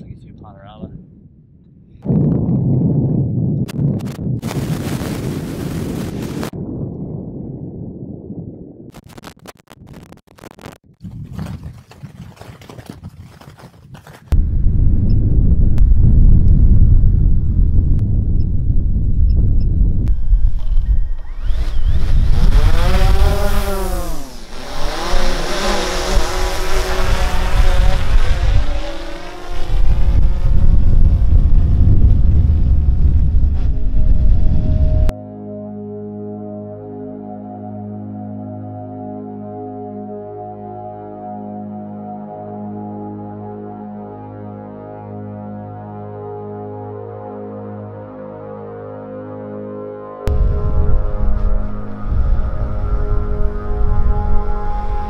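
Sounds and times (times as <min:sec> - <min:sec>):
wind buffeting microphone: 0:00.0 - 0:08.9, 0:10.9 - 0:35.1, 0:50.3 - 0:55.0
drone propellers whining: 0:17.0 - 0:35.1.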